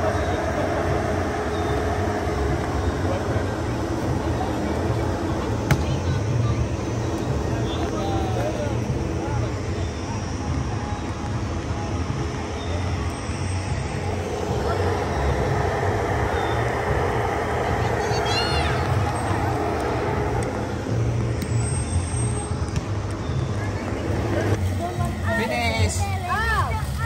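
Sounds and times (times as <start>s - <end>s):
foam cannon spraying: 0.0s - 27.0s
low motor hum: 0.0s - 27.0s.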